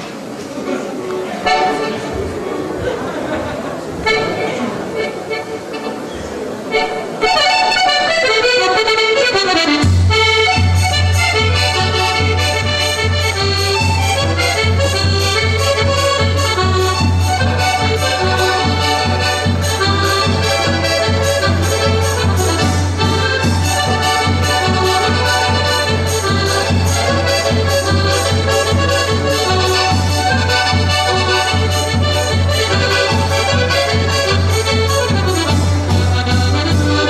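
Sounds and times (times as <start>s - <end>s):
accordions playing a polka: 1.4s - 2.8s, 3.4s - 37.0s.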